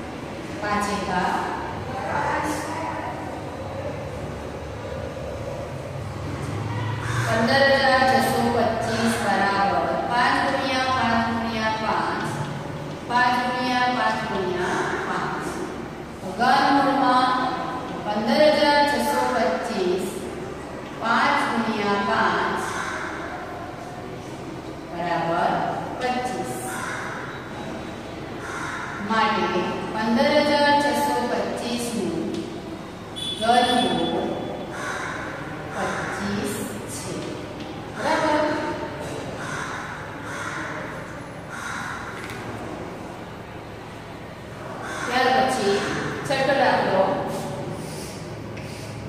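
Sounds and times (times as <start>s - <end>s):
low rumble and hiss: 0.0s - 49.0s
woman speaking: 0.6s - 3.5s, 7.3s - 12.5s, 13.1s - 20.3s, 21.0s - 22.7s, 24.9s - 26.8s, 29.0s - 32.4s, 33.4s - 34.4s, 35.8s - 38.9s, 45.1s - 47.7s.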